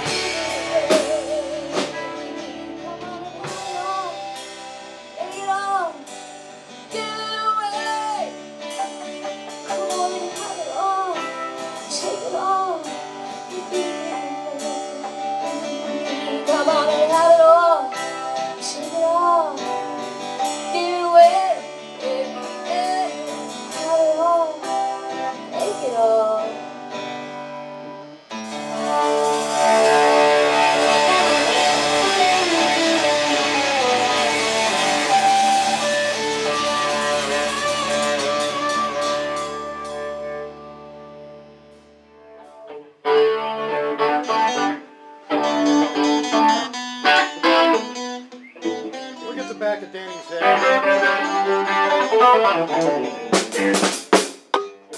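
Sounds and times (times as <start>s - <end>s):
electric guitar bending notes: 0.0s - 54.9s
rock band playing: 0.0s - 54.9s
stop-start guitar phrases: 0.0s - 54.9s.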